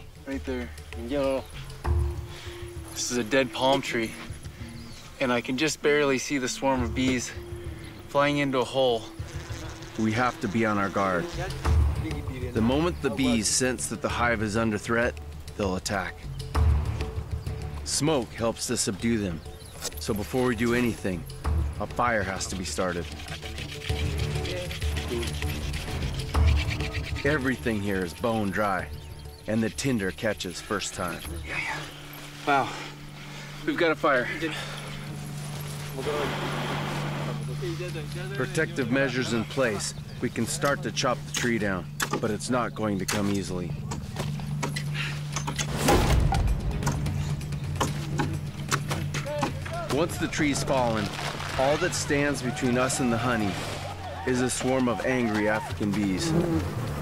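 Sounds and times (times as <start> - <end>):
background music with bass line: 0.0 - 5.4, 6.4 - 33.2, 34.0 - 57.0
wooden hand drill scraping rattle: 22.3 - 28.5, 50.0 - 56.9.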